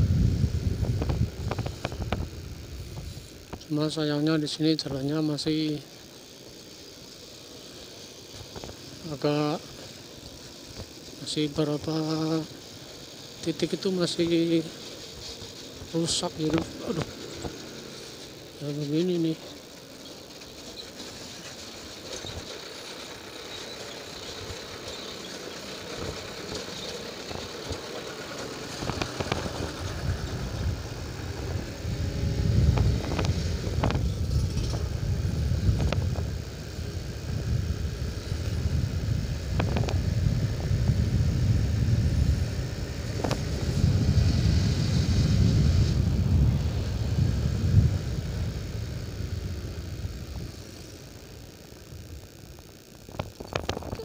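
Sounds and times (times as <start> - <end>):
rough rumble on microphone: 0.0 - 3.7, 27.3 - 51.0
motorcycle engine running: 0.0 - 54.0.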